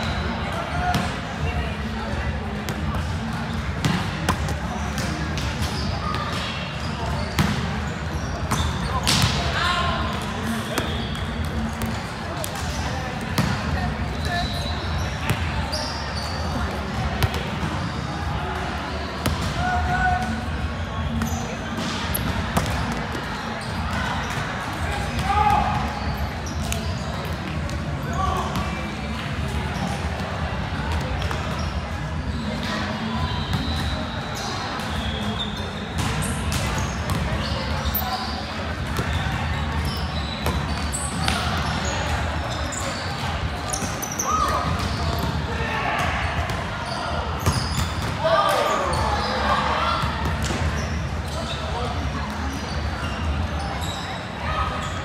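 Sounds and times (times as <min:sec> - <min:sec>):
volleyballs struck and bouncing: 0:02.5 - 0:07.8, 0:08.4 - 0:14.4, 0:19.2 - 0:26.0
shoes squeaking on court: 0:02.7 - 0:09.4, 0:10.1 - 0:18.2, 0:21.0 - 0:24.5, 0:25.8 - 0:28.6, 0:31.2 - 0:45.4, 0:46.4 - 0:55.0.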